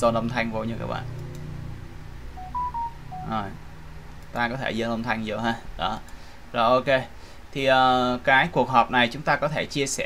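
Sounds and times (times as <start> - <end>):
short electronic beeps: 2.4 - 3.4.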